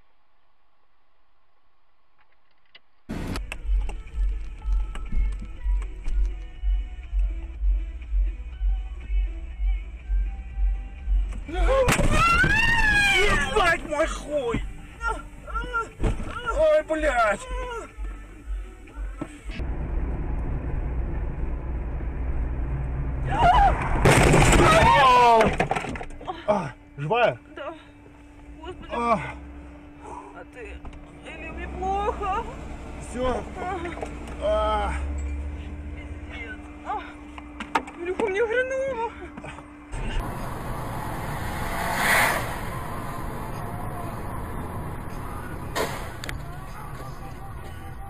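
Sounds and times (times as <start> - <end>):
car driving rumble: 3.1 - 27.1, 27.8 - 48.0.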